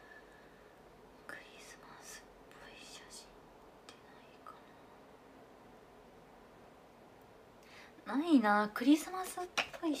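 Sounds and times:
woman whispering: 0:01.2 - 0:04.8.

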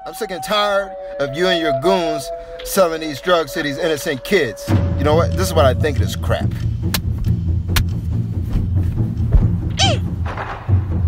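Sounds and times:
low background drone: 0:00.0 - 0:10.3
dull low thud: 0:06.8 - 0:11.0
high cat-like cry: 0:09.8 - 0:10.0.

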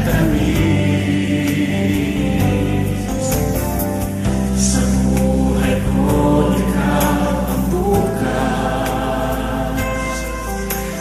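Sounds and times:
soft instrumental backing: 0:00.0 - 0:11.0.

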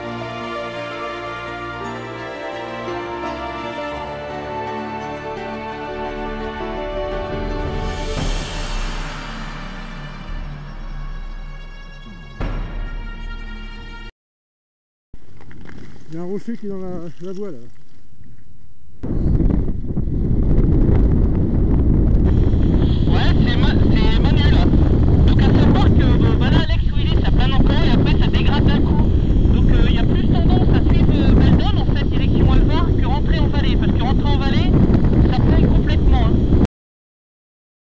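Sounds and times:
wind buffeting microphone: 0:19.0 - 0:36.7.

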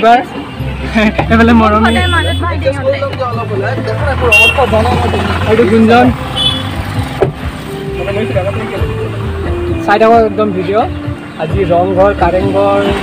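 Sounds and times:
car engine humming: 0:00.2 - 0:13.0
people talking: 0:01.0 - 0:06.2, 0:09.9 - 0:13.0.

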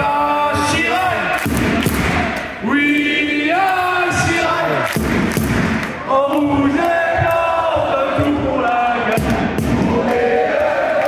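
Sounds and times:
crowd chanting: 0:06.0 - 0:11.0.

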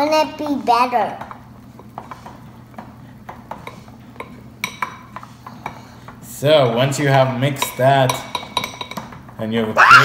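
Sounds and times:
utensil clinking on glass bowl: 0:07.6 - 0:09.2.

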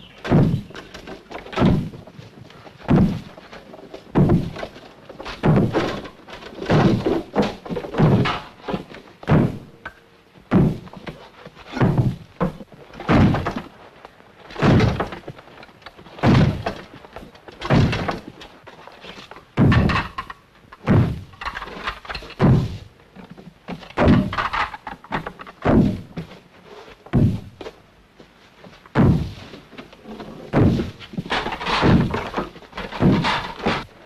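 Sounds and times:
wooden door being rammed: 0:00.0 - 0:02.2, 0:02.8 - 0:13.9, 0:14.5 - 0:26.3, 0:27.1 - 0:27.6, 0:29.0 - 0:29.4, 0:30.1 - 0:34.0.

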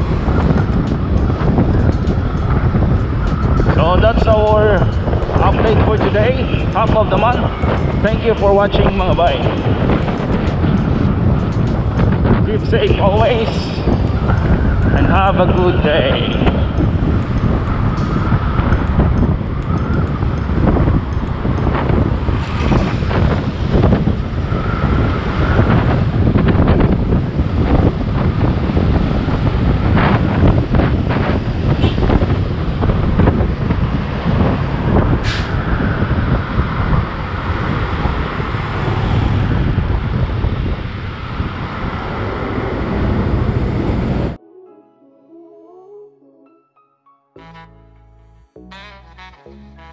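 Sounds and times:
road traffic hum: 0:00.0 - 0:44.4, 0:47.4 - 0:49.9
wind rushing over microphone: 0:00.0 - 0:44.4.

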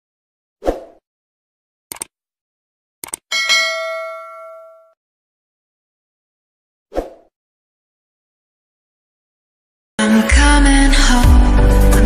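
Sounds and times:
mouse clicks: 0:01.9 - 0:02.1, 0:03.0 - 0:03.2
bright bell ding: 0:03.3 - 0:05.0.

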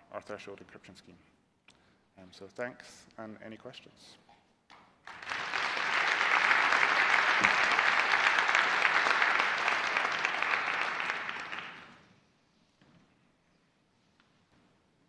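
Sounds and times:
audience applauding: 0:05.1 - 0:12.0.

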